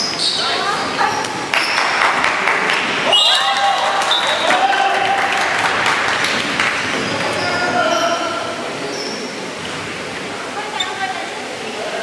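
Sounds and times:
crowd clapping and cheering: 1.5 - 7.4.

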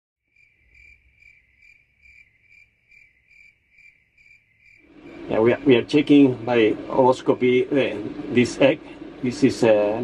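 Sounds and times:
cricket chirping: 0.3 - 5.7.

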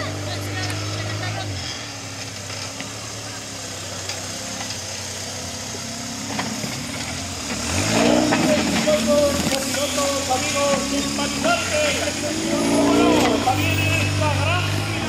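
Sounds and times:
buggy engine revving: 0.0 - 15.0.

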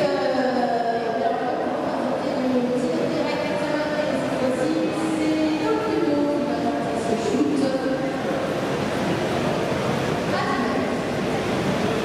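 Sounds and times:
background hubbub: 0.0 - 12.0.

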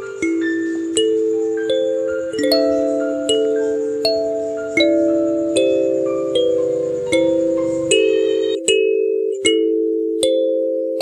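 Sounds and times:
kalimba music: 0.0 - 11.0.

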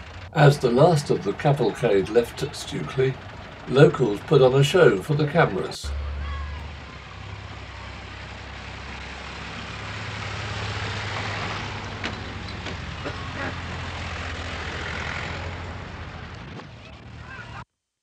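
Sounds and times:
crowd noise: 0.0 - 17.6
vehicle engines rumbling: 0.0 - 17.6.

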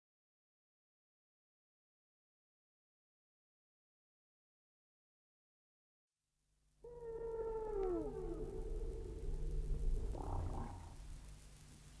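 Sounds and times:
whale song moan: 6.8 - 11.3
steady low hum: 7.0 - 12.0.

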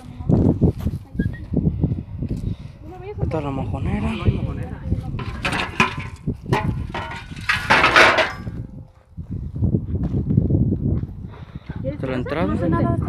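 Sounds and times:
frame knocking and scraping: 5.2 - 8.7.

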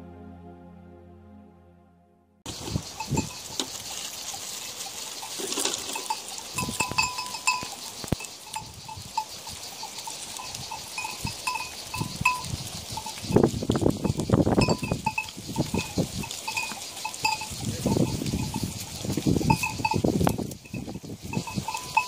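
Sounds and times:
goat bells clinking: 2.5 - 22.0.

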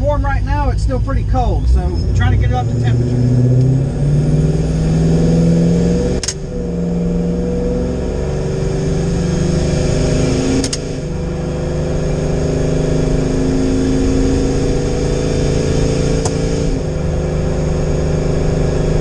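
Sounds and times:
sharp click: 6.2 - 6.5, 10.6 - 10.9.

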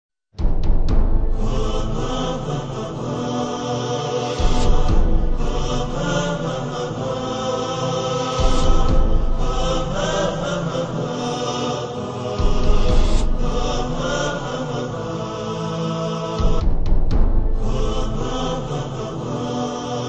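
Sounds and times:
deep low hits: 0.4 - 2.8, 4.4 - 6.8, 8.4 - 10.7, 12.4 - 14.4, 16.4 - 18.8
drone-like chanting voice: 1.1 - 20.0
sustained tones: 1.3 - 16.3.

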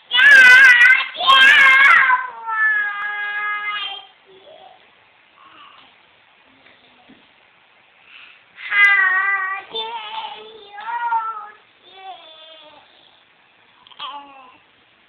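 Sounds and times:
toddler girl singing: 0.1 - 4.8, 8.6 - 13.2.

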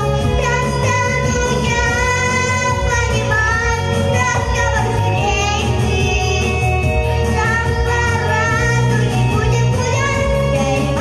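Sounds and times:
girl singing into microphone: 0.0 - 11.0
instrumental accompaniment: 0.0 - 11.0.

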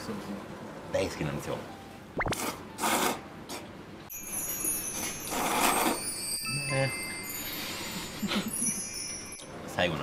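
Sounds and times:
high tinkling sound effect: 4.1 - 9.6.

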